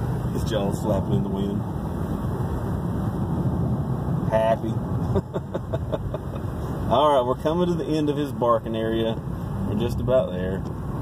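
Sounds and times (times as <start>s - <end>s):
tyre and road noise: 0.0s - 11.0s
wind through car window: 0.0s - 11.0s.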